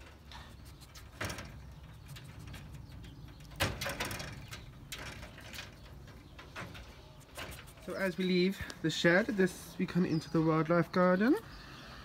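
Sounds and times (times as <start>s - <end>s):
wire-mesh cage clicking and knocking: 0.0s - 8.0s.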